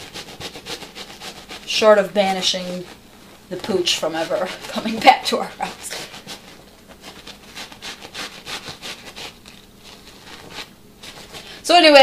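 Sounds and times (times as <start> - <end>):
scrub brush on wet fabric: 0.0 - 11.7.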